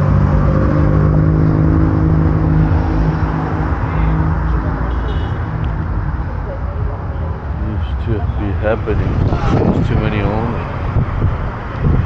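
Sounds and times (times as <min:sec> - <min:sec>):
road and wind rumble: 0:00.0 - 0:12.0
vehicle engine hum: 0:00.0 - 0:12.0.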